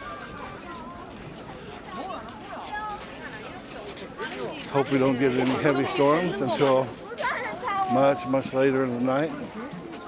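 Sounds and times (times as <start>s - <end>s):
crowd hubbub: 0.0s - 10.0s
passers-by talking: 0.0s - 10.0s.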